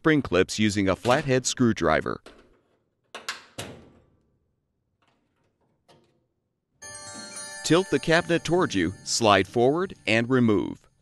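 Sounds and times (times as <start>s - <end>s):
bright chime: 6.8s - 10.6s.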